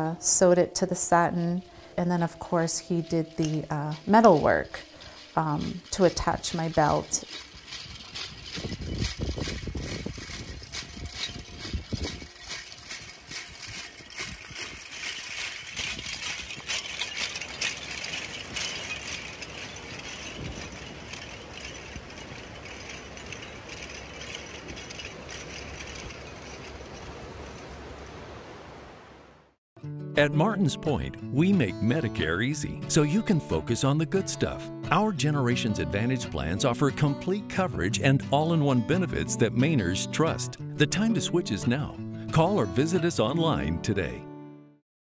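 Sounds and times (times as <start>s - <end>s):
metal cones clinking: 1.1s - 28.1s.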